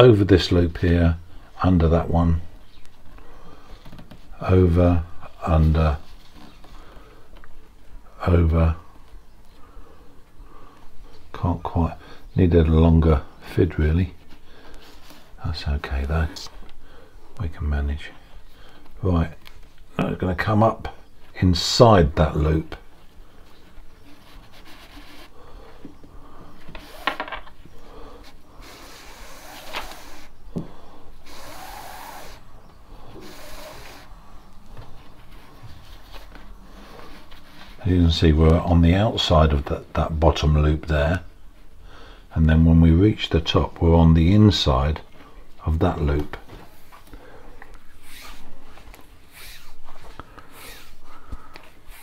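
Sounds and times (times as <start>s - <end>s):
cord rubbing through loops: 28.4s - 30.5s, 31.2s - 38.2s, 47.8s - 52.0s.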